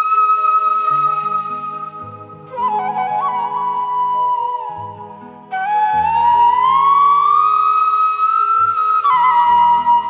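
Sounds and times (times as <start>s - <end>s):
bamboo flute long note: 0.0s - 10.0s.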